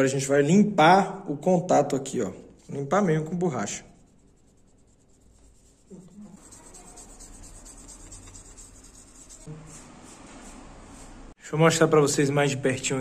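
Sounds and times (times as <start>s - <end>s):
eraser scrubbing circuit board: 3.6s - 11.2s.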